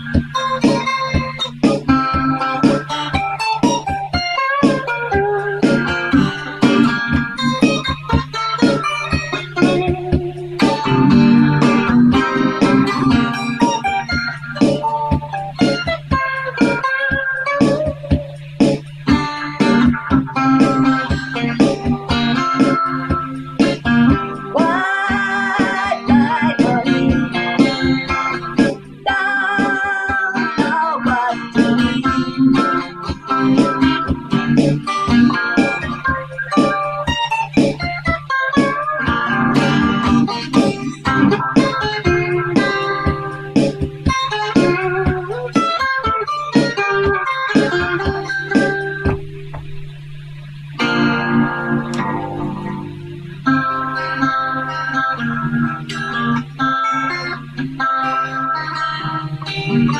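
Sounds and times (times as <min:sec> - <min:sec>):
electric guitar lead lines: 0:00.0 - 0:59.9.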